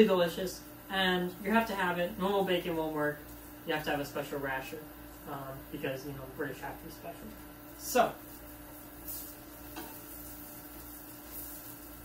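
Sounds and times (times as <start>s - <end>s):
steady low hum: 0.0s - 12.0s
utensils scraping a frying pan: 8.3s - 12.0s.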